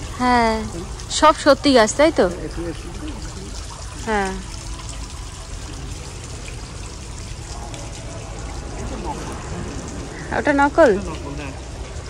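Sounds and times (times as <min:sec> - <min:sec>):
water trickling: 0:00.0 - 0:12.0.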